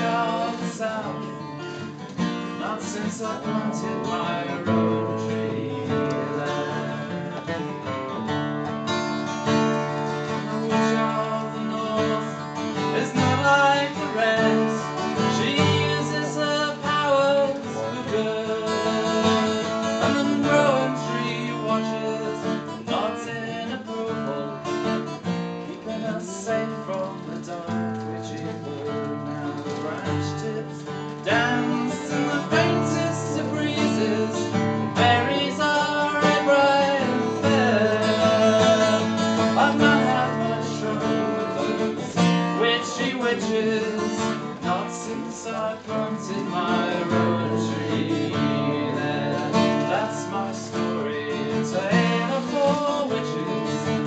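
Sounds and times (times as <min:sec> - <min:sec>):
acoustic guitar solo: 0:00.0 - 0:54.0.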